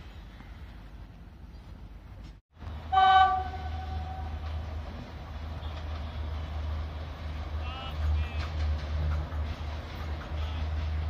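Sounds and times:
train horn blast: 2.9s - 4.4s.

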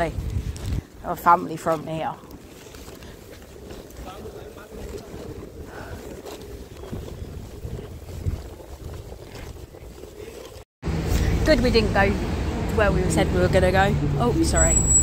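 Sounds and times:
faint street sounds: 0.0s - 8.5s, 9.4s - 15.0s
wind buffeting microphone: 0.0s - 10.6s.

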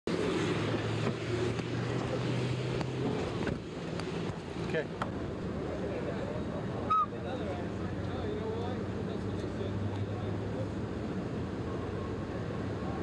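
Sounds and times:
low engine hum: 0.1s - 13.0s
street traffic noise: 0.1s - 13.0s.

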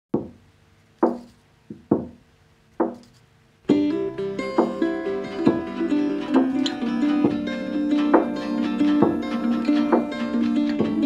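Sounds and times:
plucked guitar notes: 3.7s - 11.0s.

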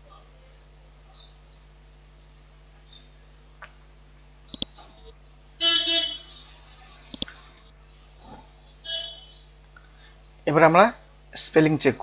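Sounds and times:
vehicle horn honk: 5.6s - 6.3s, 8.8s - 9.4s.

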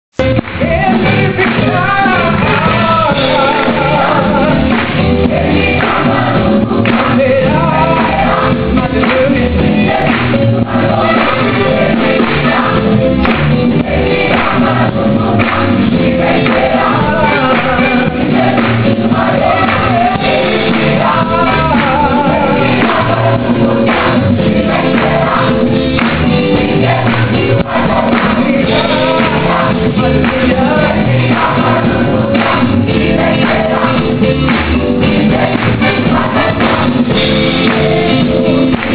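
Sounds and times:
instrumental accompaniment: 0.2s - 38.9s
choir singing gospel song: 0.3s - 38.9s.

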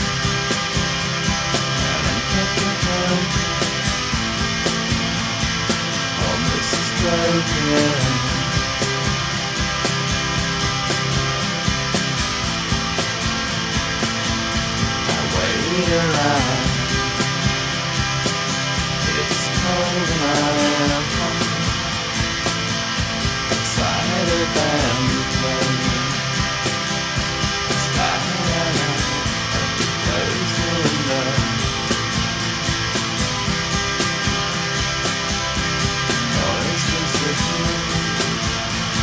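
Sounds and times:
indie rock song: 0.0s - 39.0s.

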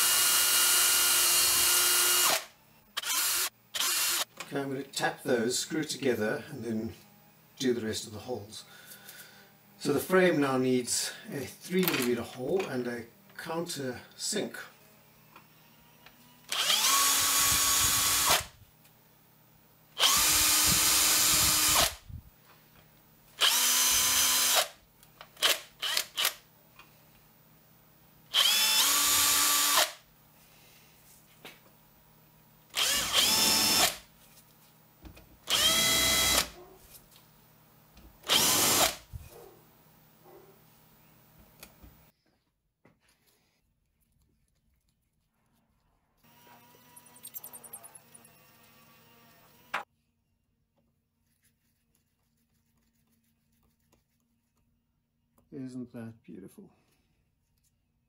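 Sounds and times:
power drill running: 0.0s - 4.3s, 14.7s - 18.6s, 20.0s - 22.1s, 23.4s - 24.8s, 25.4s - 26.4s, 28.3s - 30.0s, 32.7s - 34.1s, 35.4s - 36.6s, 38.2s - 39.1s, 46.2s - 49.9s.

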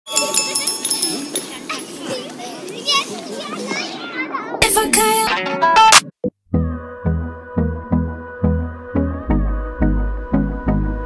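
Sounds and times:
children chattering and calling: 0.1s - 5.6s.

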